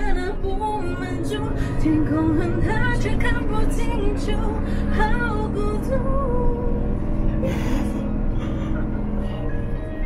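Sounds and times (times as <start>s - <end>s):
steady low drone: 0.0s - 10.0s.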